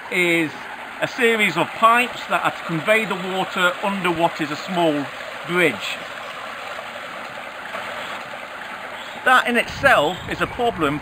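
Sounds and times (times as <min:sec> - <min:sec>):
water pouring and splashing into pool: 0:00.0 - 0:10.2.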